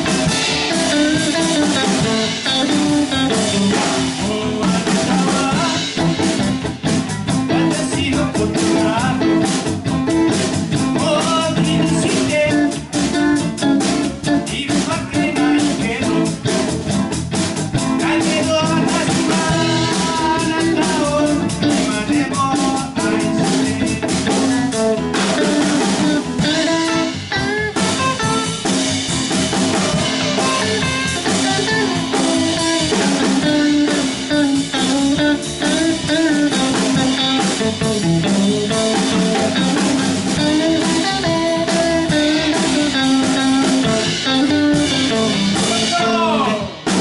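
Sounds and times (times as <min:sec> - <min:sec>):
electric guitar bending notes: 0:00.0 - 0:47.0
live band playing: 0:00.0 - 0:47.0.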